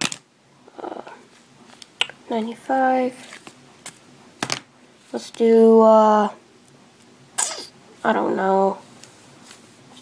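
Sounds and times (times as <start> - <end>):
person murmuring: 0.7 - 1.2.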